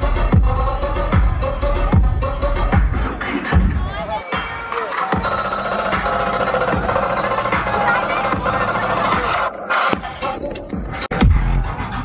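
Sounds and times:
dubstep music with bass sweeps: 0.0 - 12.0.

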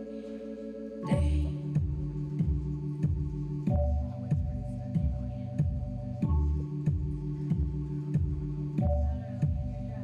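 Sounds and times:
held synthesizer chords: 0.0 - 10.0
steady kick-drum beat: 1.1 - 10.0.

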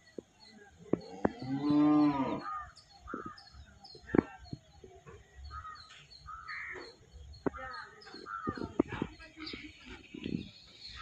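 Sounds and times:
cow mooing: 1.1 - 2.5.

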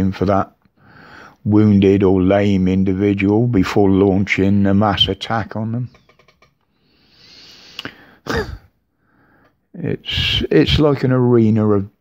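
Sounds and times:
man drawing a long breath: 0.8 - 1.4, 6.8 - 8.3.

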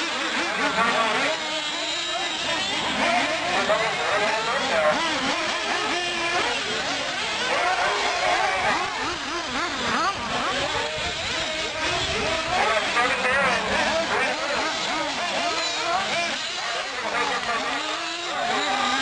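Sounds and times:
rc buggy motors revving: 0.0 - 19.0.

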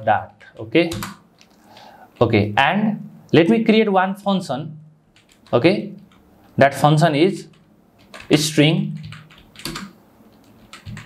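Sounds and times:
typing on computer keyboard: 0.3 - 1.2, 5.1 - 6.3, 7.4 - 11.0.

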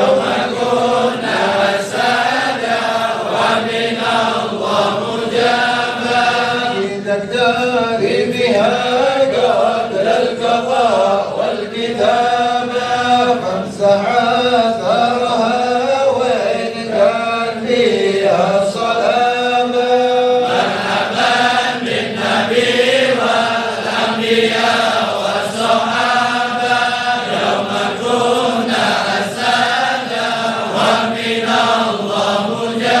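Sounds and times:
men chanting together: 0.0 - 33.0.

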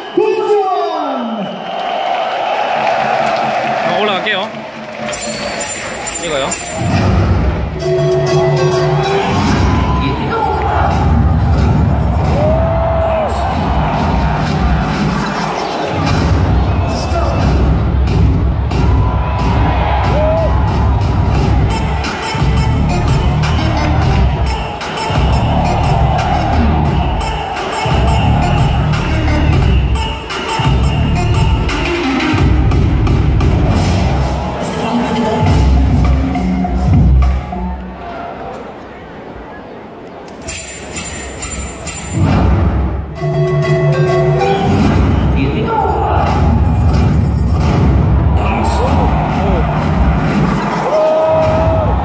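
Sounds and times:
loud music with heavy bass beat: 5.1 - 37.8, 40.6 - 52.0.

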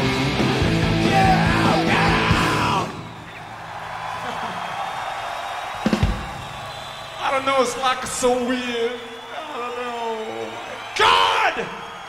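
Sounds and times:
live rock band: 0.0 - 3.1
crowd cheering and yelling: 0.0 - 12.0.

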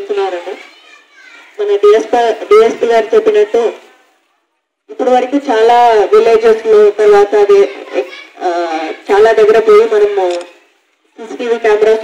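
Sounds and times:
woman speaking into a microphone: 0.0 - 0.6, 1.5 - 3.9, 4.9 - 10.6, 11.2 - 12.0.

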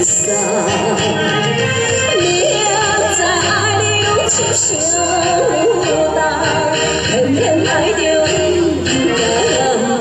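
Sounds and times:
pop ballad backing music: 0.0 - 10.0.

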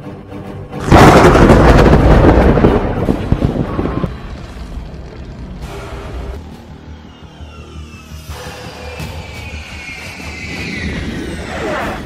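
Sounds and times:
loud explosion boom: 0.8 - 4.8
low rumble with crackling: 0.8 - 6.8.

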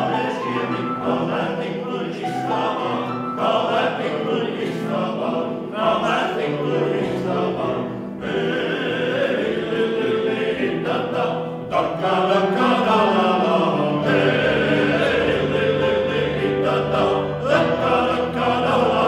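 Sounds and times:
grand piano accompaniment: 0.0 - 19.0
men singing in harmony: 0.0 - 19.0.

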